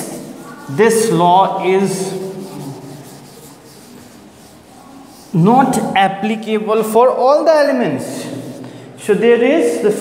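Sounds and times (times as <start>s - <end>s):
duster rubbing on chalkboard: 0.0s - 7.0s, 8.0s - 8.7s.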